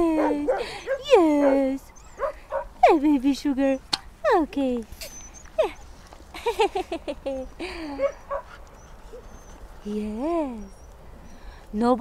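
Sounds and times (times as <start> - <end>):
dog whining: 0.0 - 2.7, 5.0 - 6.0, 7.4 - 11.5.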